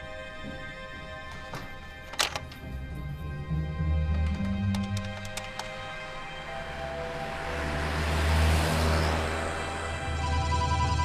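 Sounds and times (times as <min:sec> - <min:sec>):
background music: 0:00.0 - 0:11.0
car driving past: 0:06.4 - 0:11.0.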